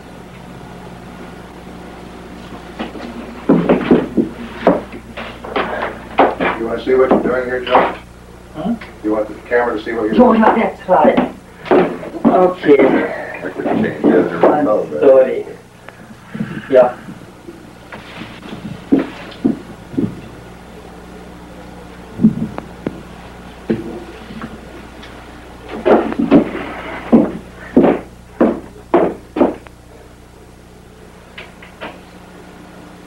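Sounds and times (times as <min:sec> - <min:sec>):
low electrical hum: 0:00.0 - 0:33.0
sharp knocks and clicks: 0:02.8 - 0:08.1, 0:25.7 - 0:29.7.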